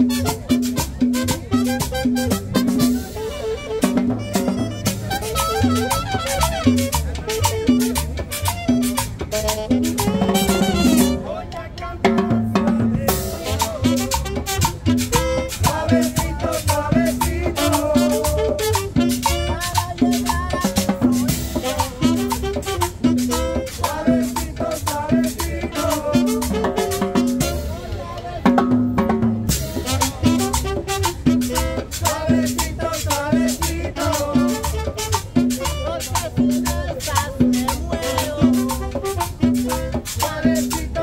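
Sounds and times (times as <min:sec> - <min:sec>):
bass line: 0:00.0 - 0:41.0
congas beating: 0:00.0 - 0:41.0
latin dance band playing: 0:00.0 - 0:41.0.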